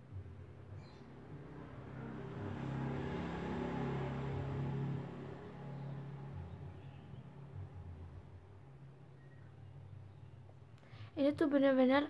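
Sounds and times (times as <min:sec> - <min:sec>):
vehicle engine passing by: 0:00.1 - 0:09.2.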